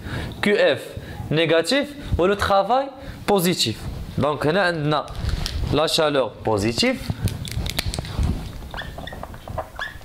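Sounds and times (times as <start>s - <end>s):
marker squeaking on whiteboard: 7.5s - 10.0s.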